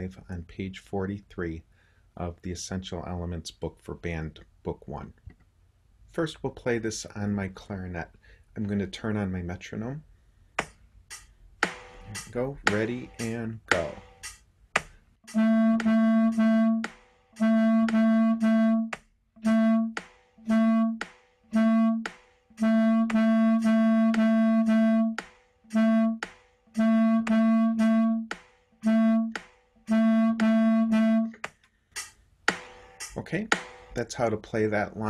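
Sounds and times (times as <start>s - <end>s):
clarinet repeated note: 12.1s - 14.0s, 15.3s - 31.4s.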